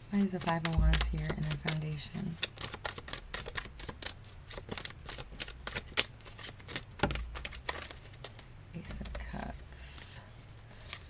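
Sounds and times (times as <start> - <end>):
cards being shuffled: 0.0 - 10.1, 10.7 - 11.0.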